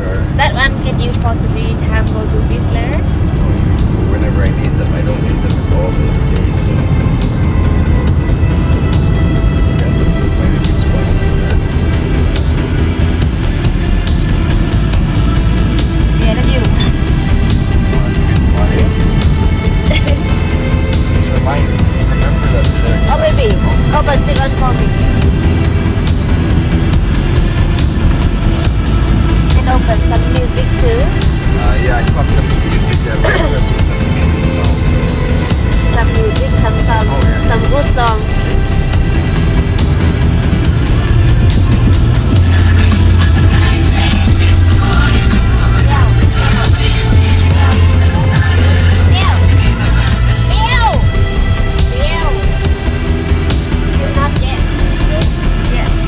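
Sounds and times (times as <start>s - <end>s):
car road and engine rumble: 0.0s - 56.0s
music playing: 0.0s - 56.0s.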